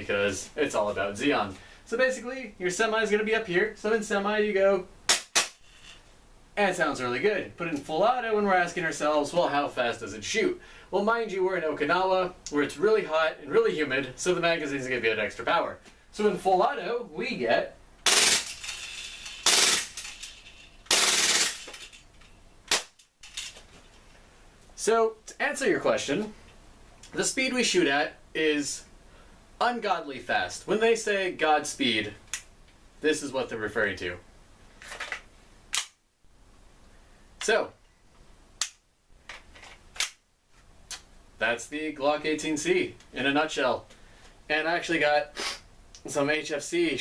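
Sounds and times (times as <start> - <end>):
airsoft pistol full-auto bursts: 18.0 - 18.7, 19.4 - 20.0, 20.9 - 21.7.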